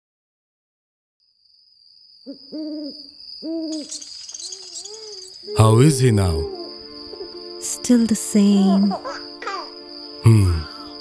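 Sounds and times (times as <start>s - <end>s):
high-pitched insect trill: 1.2s - 11.0s
owl hooting: 2.2s - 7.6s.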